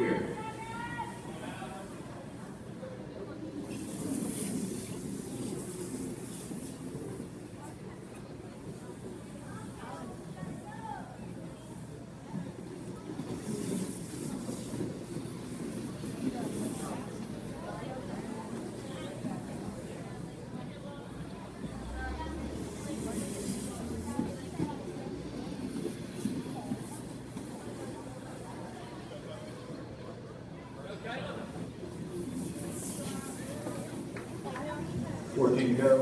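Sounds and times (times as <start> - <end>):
background chatter: 0.0 - 36.0
skate wheels rolling on wood: 3.5 - 29.8, 31.2 - 36.0.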